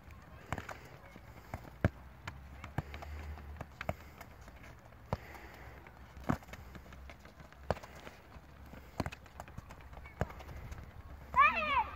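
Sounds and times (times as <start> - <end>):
football kicked and bouncing: 0.0 - 11.9.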